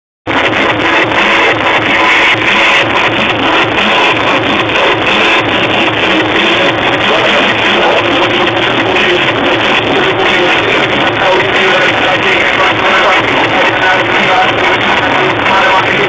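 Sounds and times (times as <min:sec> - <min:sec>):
loud electronic dance music: 0:00.3 - 0:16.0.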